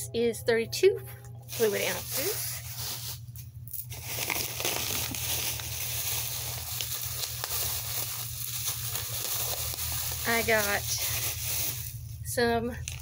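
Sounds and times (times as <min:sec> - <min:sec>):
plastic bag rustling: 0:01.4 - 0:13.0.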